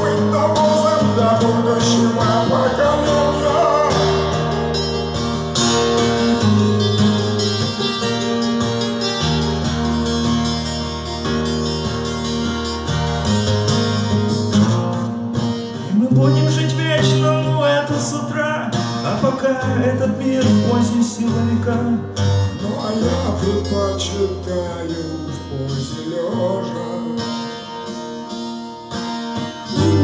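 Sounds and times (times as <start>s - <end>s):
twelve-string guitar strumming: 0.0s - 30.0s.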